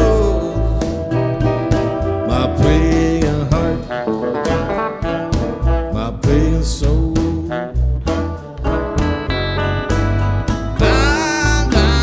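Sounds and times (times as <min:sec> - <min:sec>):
instrumental blues rock music: 0:00.0 - 0:12.0.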